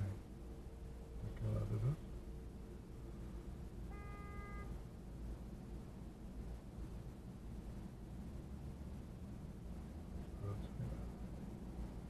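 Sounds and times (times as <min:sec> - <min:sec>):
low rumble inside a car: 0:00.0 - 0:12.0.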